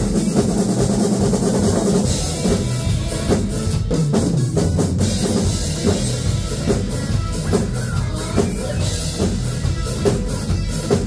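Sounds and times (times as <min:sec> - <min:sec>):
acoustic drum kits playing: 0:00.0 - 0:11.0
music: 0:00.0 - 0:11.0.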